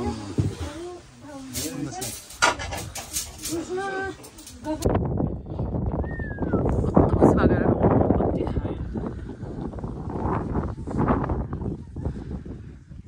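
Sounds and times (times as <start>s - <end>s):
voices: 0.0s - 5.0s
wind on microphone: 0.0s - 13.0s.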